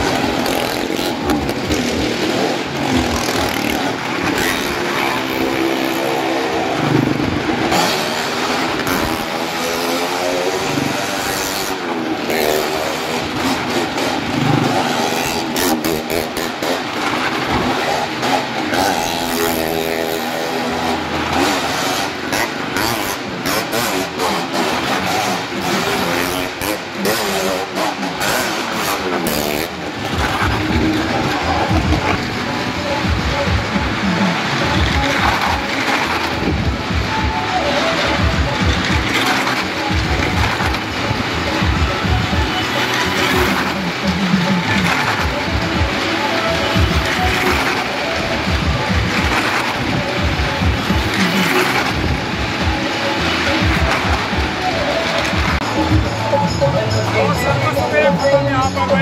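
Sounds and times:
car and motorcycle engines revving: 0:00.0 - 0:59.0.

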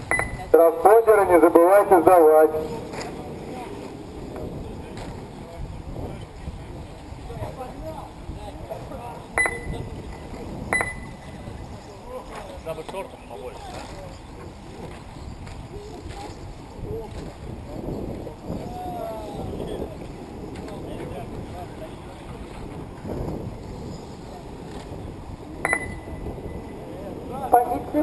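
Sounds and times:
distant voices: 0:00.0 - 0:28.0
low background noise: 0:00.0 - 0:28.0
short high beep: 0:00.1 - 0:00.5, 0:09.4 - 0:09.8, 0:10.7 - 0:11.3, 0:25.7 - 0:26.2
loudspeaker voice: 0:00.5 - 0:02.9, 0:27.4 - 0:28.0.

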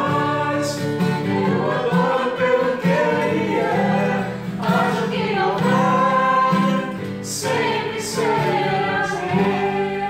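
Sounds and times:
group singing gospel song: 0:00.0 - 0:10.0.

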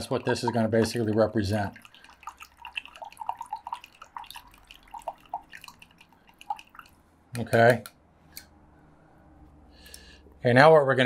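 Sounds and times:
liquid plinks and drips: 0:00.0 - 0:07.0
water stirred in plastic cup: 0:00.0 - 0:07.0.

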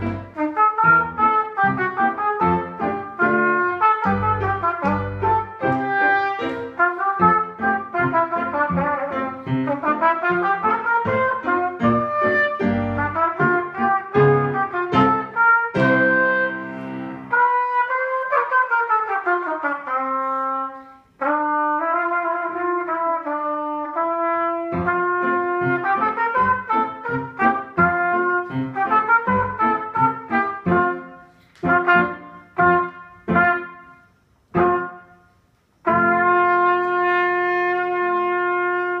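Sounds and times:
solo trumpet playing: 0:00.0 - 0:39.0.

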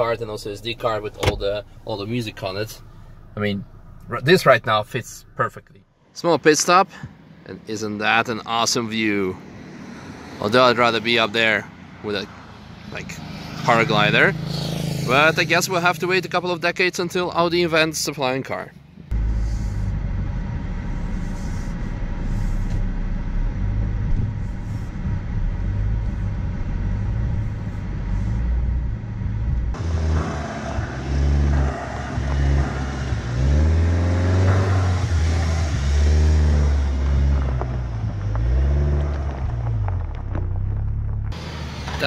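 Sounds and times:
car engine rumbling and revving: 0:00.0 - 0:42.0.

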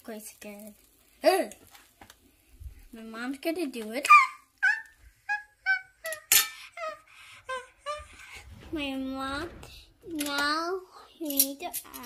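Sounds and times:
child giggling: 0:04.1 - 0:08.2.

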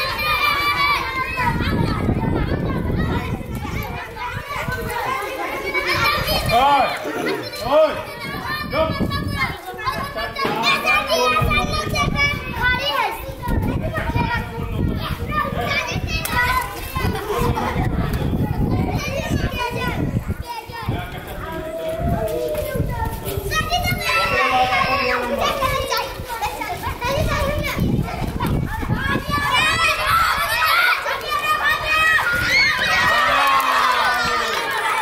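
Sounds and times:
children shouting at play: 0:00.0 - 0:35.0.

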